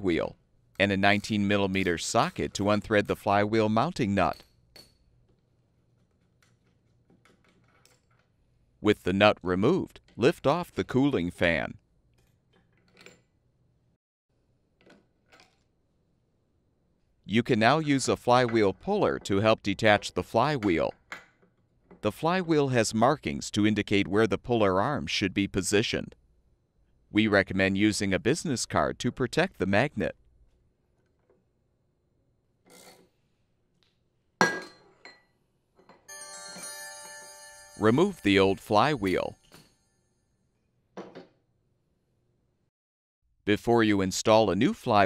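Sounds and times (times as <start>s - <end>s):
faint clicks and clinks of parts: 4.2s - 8.6s, 12.1s - 13.4s
sustained alert chime: 36.1s - 40.1s.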